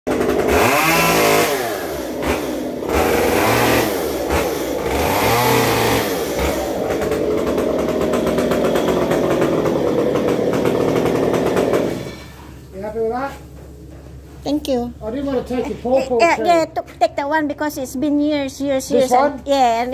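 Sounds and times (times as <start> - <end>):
chainsaw revving: 0.1 - 12.4
person speaking: 14.4 - 19.9.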